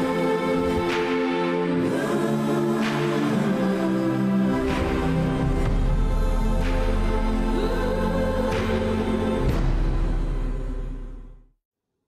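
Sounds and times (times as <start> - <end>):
choir holding sustained chords: 0.0 - 11.4.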